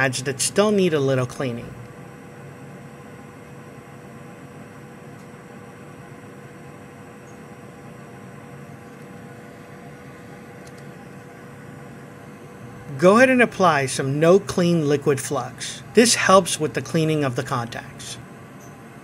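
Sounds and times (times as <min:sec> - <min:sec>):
steady hum with hiss: 0:00.0 - 0:19.0.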